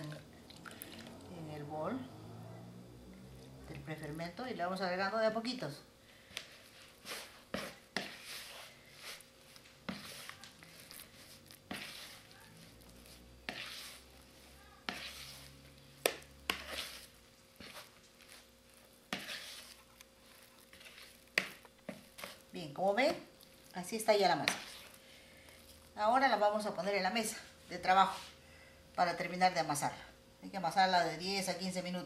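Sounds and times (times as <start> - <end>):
dough squelching by hand: 3.2 - 28.3.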